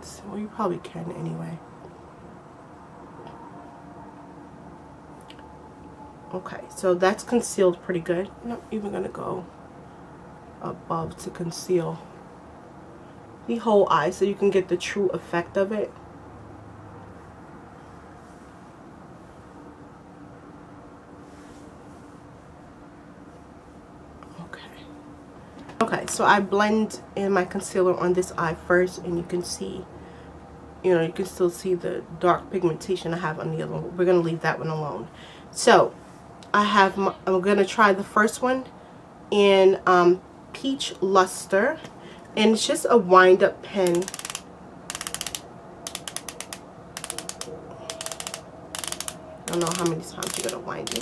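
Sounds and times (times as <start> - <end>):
faint steady hum: 0.0 - 51.0
person softly speaking: 24.2 - 25.0
rapid ratchet clicks: 43.8 - 51.0.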